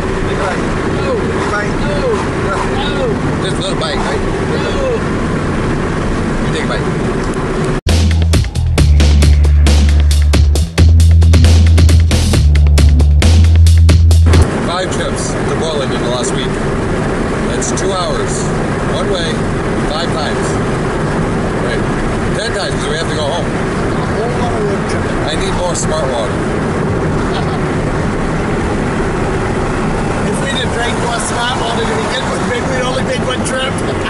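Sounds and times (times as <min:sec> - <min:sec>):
car road and engine noise: 0:00.0 - 0:34.0
people talking: 0:00.2 - 0:05.1, 0:06.4 - 0:07.0, 0:14.4 - 0:16.6, 0:17.4 - 0:20.6, 0:21.6 - 0:26.4, 0:27.2 - 0:27.6, 0:30.2 - 0:34.0.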